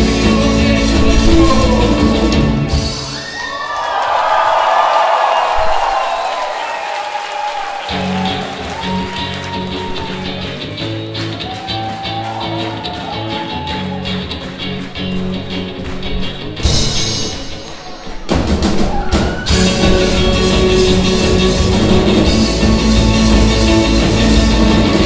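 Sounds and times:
bass guitar: 0:00.0 - 0:03.2, 0:07.9 - 0:25.0
electric guitar chords: 0:00.0 - 0:03.2, 0:19.5 - 0:25.0
drum kit beat: 0:00.0 - 0:03.3, 0:07.9 - 0:25.0.

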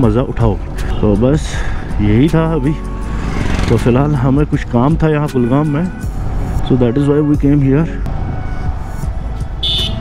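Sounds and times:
motorcycle engine rumble: 0:00.0 - 0:06.6
wind: 0:00.0 - 0:10.0.

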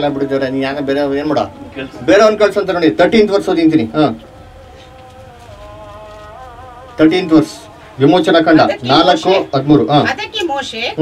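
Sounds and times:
person preaching: 0:00.0 - 0:10.2.

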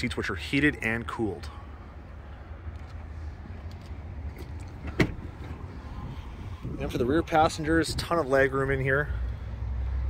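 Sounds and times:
car door latch clicking open: 0:04.4 - 0:05.3.

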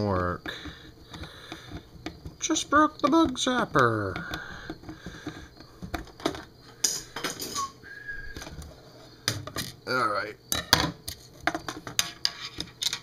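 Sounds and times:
plastic parts clicking: 0:11.1 - 0:13.0.

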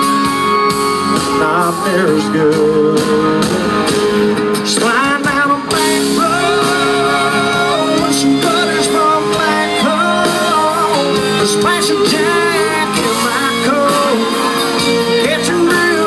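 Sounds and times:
guitars: 0:00.0 - 0:16.0
live country band: 0:00.0 - 0:16.0.

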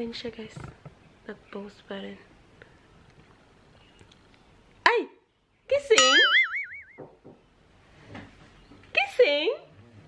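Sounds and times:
cartoon boing sound effect: 0:06.0 - 0:07.0.

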